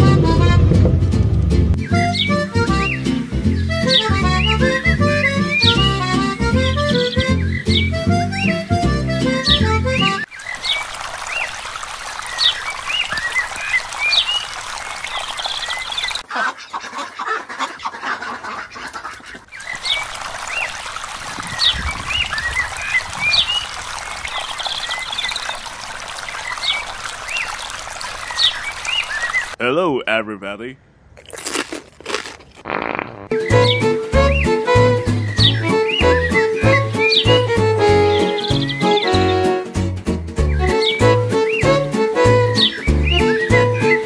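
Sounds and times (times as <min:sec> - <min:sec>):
high chirping animal calls: 0:32.7 - 0:39.4, 0:42.5 - 0:44.0.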